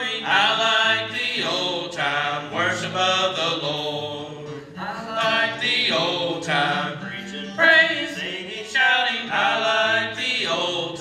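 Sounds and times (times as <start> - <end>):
male trio singing a hymn: 0.0 - 11.0.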